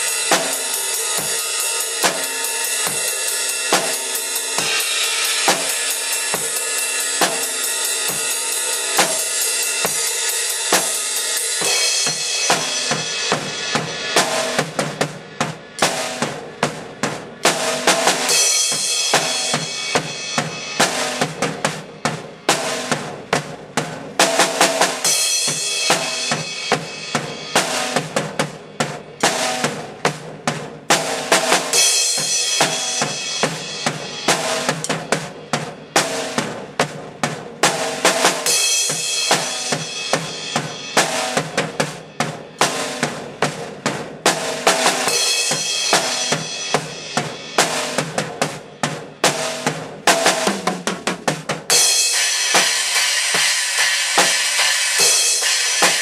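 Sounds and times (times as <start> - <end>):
rock drum kit playing: 0.0 - 56.0
cymbals washing: 51.7 - 56.0.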